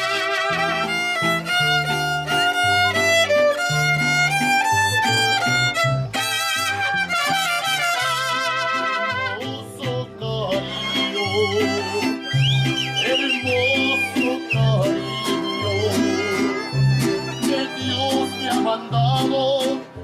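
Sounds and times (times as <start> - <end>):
violin melody with vibrato: 0.0 - 9.5, 10.4 - 20.0
low bass line: 0.5 - 20.0.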